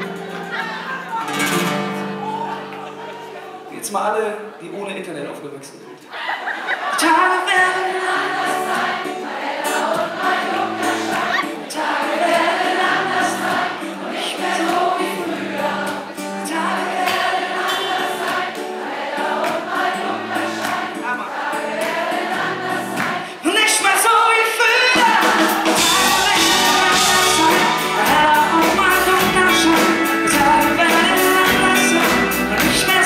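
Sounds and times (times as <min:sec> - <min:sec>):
acoustic guitar: 0:00.0 - 0:04.4, 0:06.8 - 0:33.0
man singing: 0:06.9 - 0:08.3, 0:23.4 - 0:25.2, 0:25.8 - 0:33.0
band and drums: 0:08.5 - 0:16.2, 0:24.0 - 0:33.0
bass line: 0:25.7 - 0:33.0.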